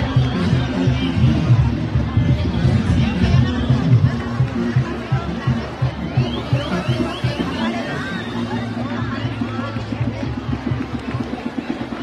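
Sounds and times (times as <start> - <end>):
crowd chatter and shouts: 0.0 - 12.0
street brass band playing: 0.0 - 12.0.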